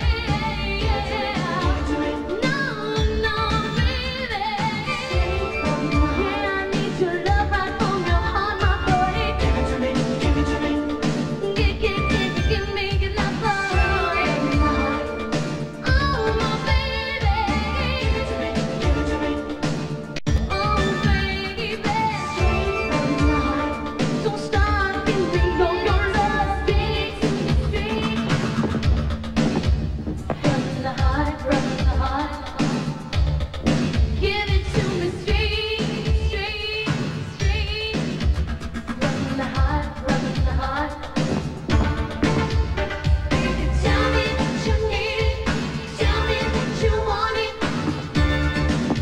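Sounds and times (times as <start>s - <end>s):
woman singing dance-pop vocal: 0.0s - 19.4s, 20.5s - 33.2s, 34.1s - 49.0s
full band with kick-drum beat: 0.0s - 49.0s.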